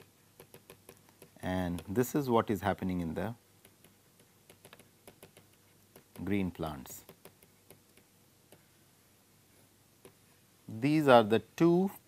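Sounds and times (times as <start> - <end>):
stylus tapping on pen tablet: 0.0 - 2.1, 3.6 - 8.7, 10.0 - 10.2.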